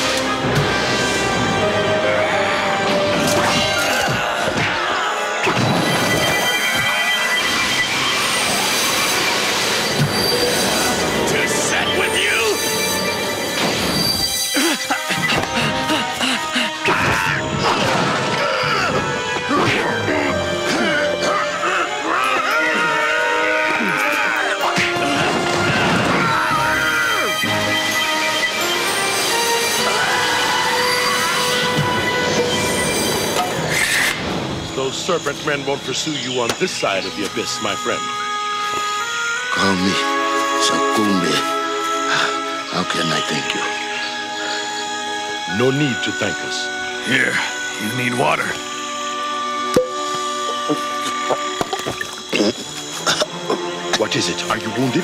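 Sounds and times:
background music: 0.0s - 55.0s
shrill electronic whine: 3.7s - 15.4s, 17.1s - 53.0s
screeching hiss with ringing tones: 4.9s - 15.2s, 26.5s - 53.0s.

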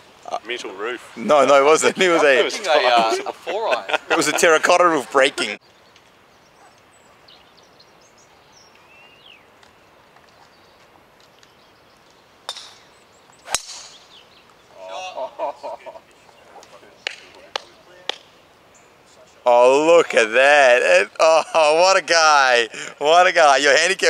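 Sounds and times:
golf club striking ball: 12.5s - 14.1s
person exclaiming: 14.8s - 15.4s.

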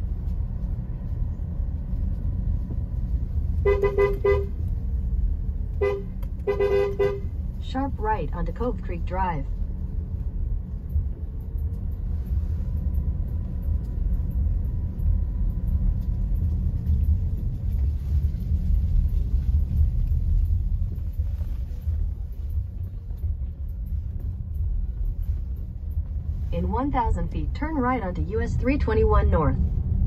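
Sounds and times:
car engine and tyres rumbling: 0.0s - 30.0s.

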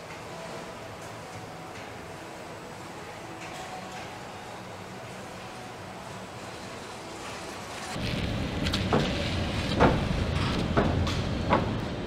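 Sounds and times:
machinery low rumble: 8.0s - 12.0s.

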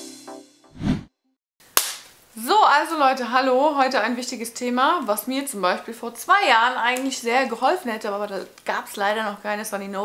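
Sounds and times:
woman speaking: 2.4s - 10.0s.

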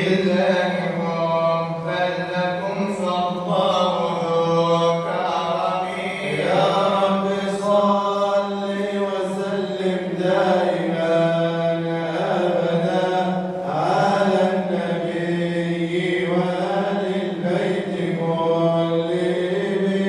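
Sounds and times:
man chanting into a microphone: 0.0s - 20.0s.

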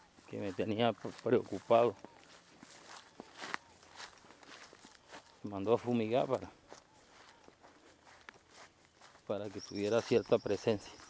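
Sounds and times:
footsteps through dry grass: 0.0s - 11.0s.

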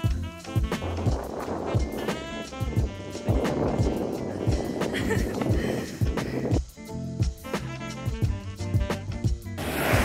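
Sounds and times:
music with a steady beat: 0.0s - 10.0s
longboard wheels rolling on asphalt: 9.6s - 10.0s.

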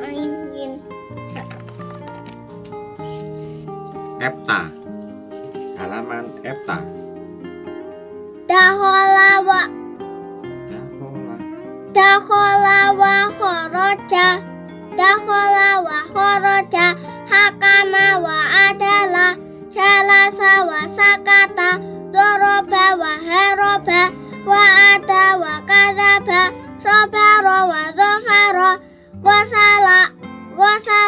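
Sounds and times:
instrumental background music: 0.0s - 31.0s.

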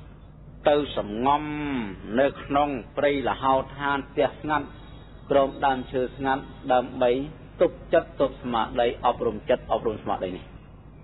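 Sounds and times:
man speaking: 0.6s - 10.5s.

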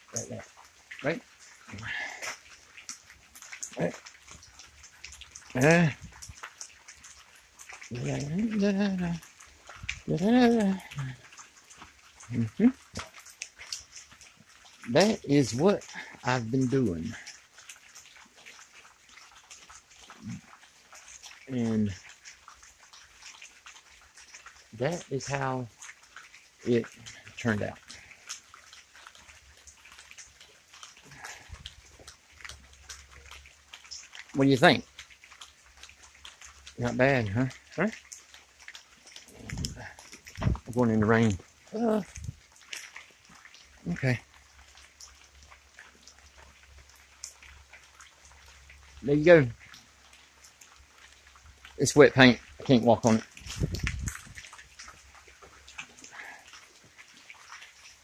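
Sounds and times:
rain drops ticking: 0.0s - 58.0s.

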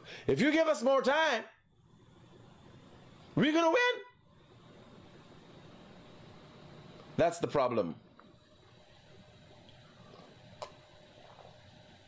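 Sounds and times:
low steady hiss and hum: 0.0s - 12.0s.

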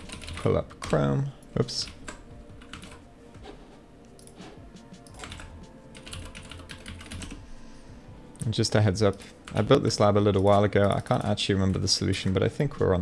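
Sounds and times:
computer keyboard typing: 0.0s - 1.1s, 1.8s - 3.0s, 5.0s - 7.4s.

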